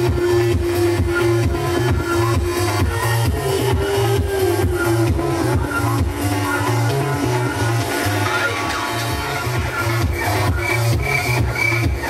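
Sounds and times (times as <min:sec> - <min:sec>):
heavy bass pulses: 0:00.0 - 0:12.0
loud techno over sound system: 0:00.0 - 0:12.0.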